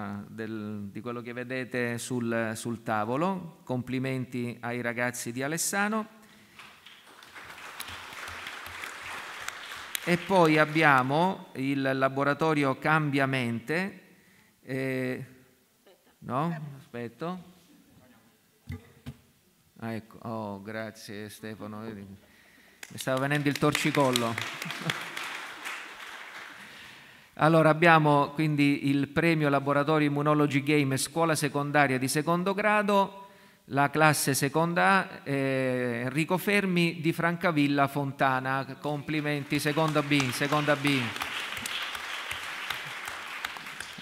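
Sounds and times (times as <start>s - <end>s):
audience applause: 6.6s - 11.1s, 22.8s - 27.0s, 39.1s - 44.0s.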